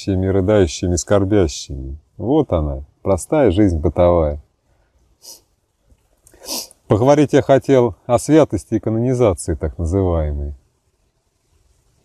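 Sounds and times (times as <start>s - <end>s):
man speaking: 0.0s - 4.4s, 6.9s - 10.6s
faint puff of breath: 4.7s - 5.6s, 6.3s - 6.8s
man's sharp breath: 5.2s - 5.5s, 6.3s - 6.8s.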